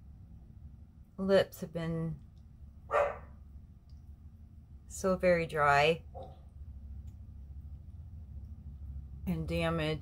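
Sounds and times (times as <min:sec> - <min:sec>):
dog bark: 0:02.9 - 0:03.4.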